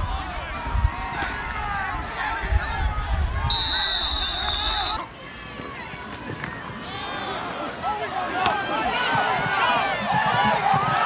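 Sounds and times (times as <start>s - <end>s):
stadium crowd voices: 0.0s - 11.0s
referee's whistle: 3.5s - 5.0s.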